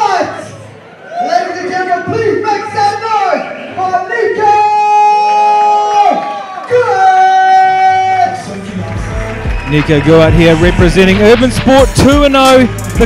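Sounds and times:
crowd noise: 0:00.0 - 0:13.0
announcer calling over loudspeaker: 0:09.6 - 0:13.0.

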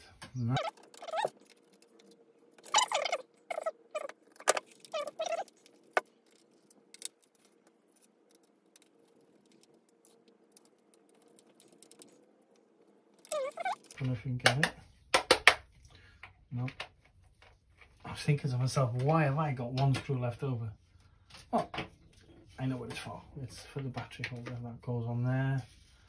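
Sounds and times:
plastic parts clicking and rattling: 0:00.2 - 0:14.2
gloves squeaking on plastic: 0:00.4 - 0:14.1.

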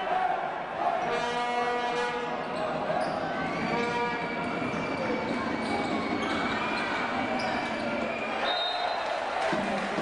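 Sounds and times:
crowd voices: 0:00.0 - 0:10.0
referee's whistle: 0:02.5 - 0:09.1.

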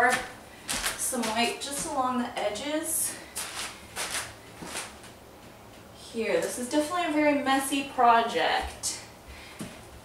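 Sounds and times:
footsteps on plastic sheet: 0:00.0 - 0:02.0, 0:03.3 - 0:05.2.

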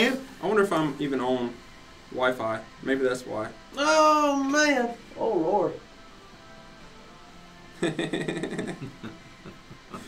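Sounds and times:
men laughing: 0:07.8 - 0:10.0.

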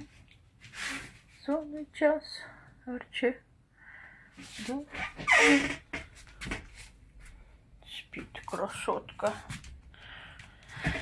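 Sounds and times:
woman speaking quietly: 0:07.8 - 0:09.5.

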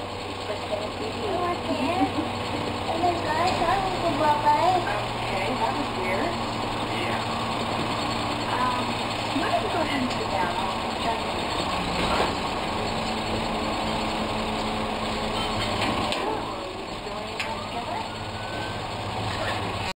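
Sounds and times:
garbage truck diesel engine idling: 0:00.0 - 0:19.9.

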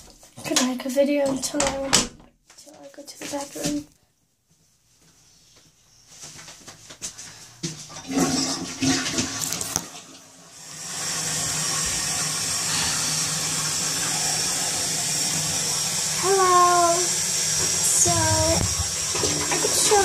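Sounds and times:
toilet flushing: 0:07.6 - 0:20.0
water refilling tank: 0:07.8 - 0:20.0.

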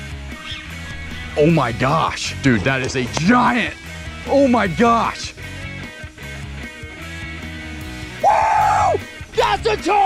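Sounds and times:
background music with steady beat: 0:00.0 - 0:10.0
man yelling: 0:08.2 - 0:10.0.

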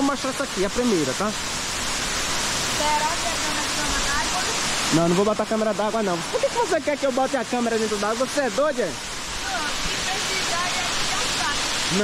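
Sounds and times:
waterfall rushing: 0:00.0 - 0:12.0.

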